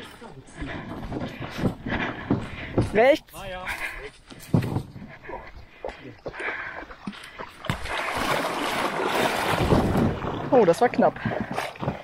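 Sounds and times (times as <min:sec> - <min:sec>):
canoe cart knocking and rattling: 0:00.0 - 0:12.0
canoe scraping into water: 0:06.2 - 0:12.0.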